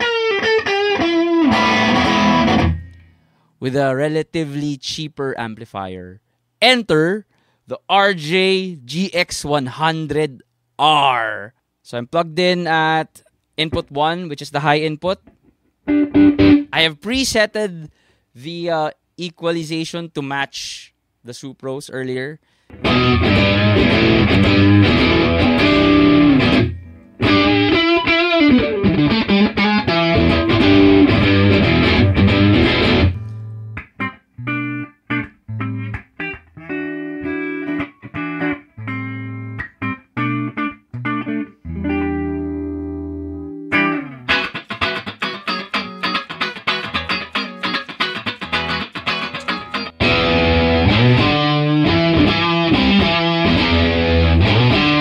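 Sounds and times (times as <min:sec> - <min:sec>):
electric guitar chords: 0:00.0 - 0:03.2, 0:15.8 - 0:16.8, 0:22.7 - 0:55.0.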